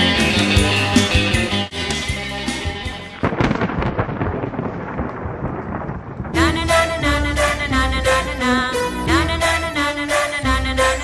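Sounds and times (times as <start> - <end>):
music: 0.0 - 3.4, 6.4 - 11.0
thunder crack and rumble: 3.2 - 8.5.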